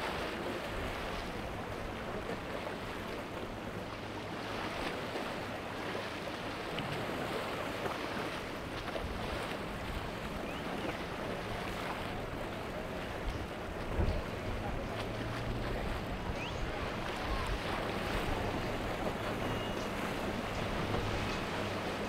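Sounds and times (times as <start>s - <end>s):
outboard engines running: 0.0s - 22.0s
water rushing along hull: 0.0s - 22.0s
wind buffeting microphone: 8.8s - 22.0s.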